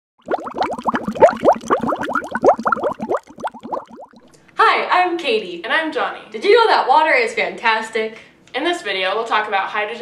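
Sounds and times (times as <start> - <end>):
water bubbling: 0.2 - 4.3.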